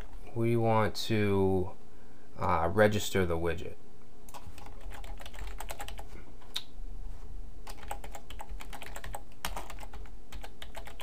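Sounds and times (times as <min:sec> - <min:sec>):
computer keyboard typing: 0:04.3 - 0:06.1, 0:07.6 - 0:11.0.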